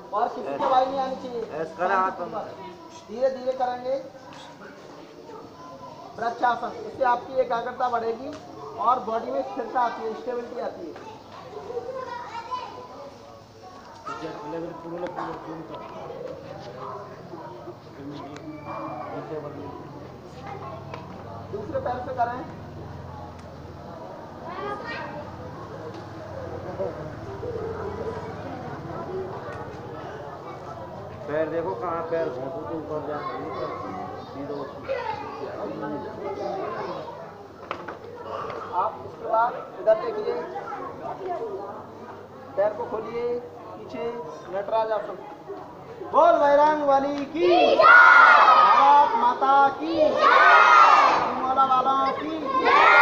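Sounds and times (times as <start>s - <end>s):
children chattering: 0.0s - 53.0s.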